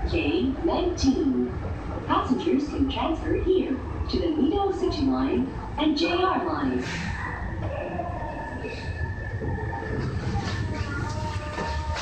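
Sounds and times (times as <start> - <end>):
subway train rumble: 0.0 - 12.0.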